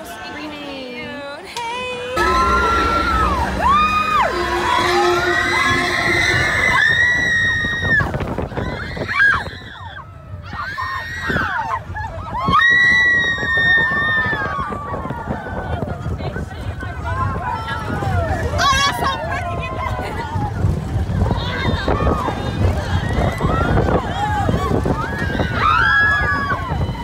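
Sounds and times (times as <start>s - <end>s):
roller coaster train rumble: 0.0s - 27.0s
wind: 0.0s - 27.0s
riders screaming and whooping: 1.6s - 27.0s.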